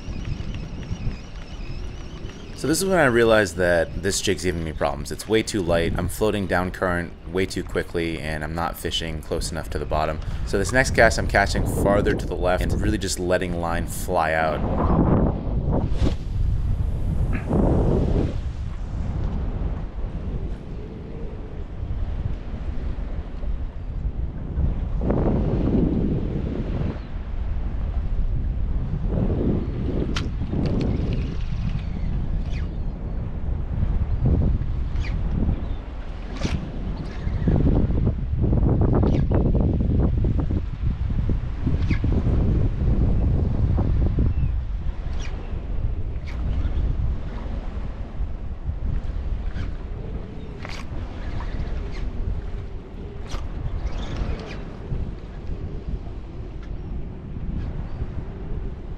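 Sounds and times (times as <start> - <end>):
choppy water washing: 0.0 - 58.9
wind buffeting microphone: 0.0 - 58.9.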